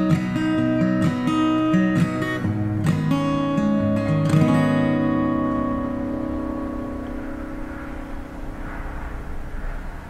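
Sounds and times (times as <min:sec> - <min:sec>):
acoustic guitar chord ringing: 0:00.0 - 0:10.0
low room rumble: 0:02.2 - 0:10.0.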